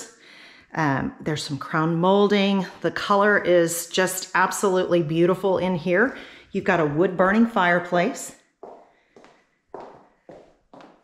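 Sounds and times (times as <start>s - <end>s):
footsteps on hardwood floor: 8.6s - 11.0s.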